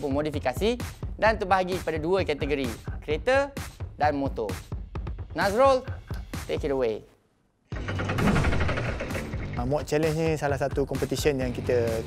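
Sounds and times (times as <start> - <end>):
music: 0.0 - 7.1, 7.7 - 12.0
loud dense rattling sound effect: 7.7 - 10.2.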